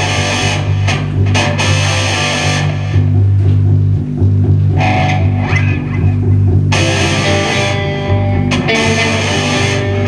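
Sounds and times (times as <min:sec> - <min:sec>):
bass line: 0:00.0 - 0:10.0
drum kit: 0:00.0 - 0:10.0
electric guitar: 0:00.0 - 0:10.0.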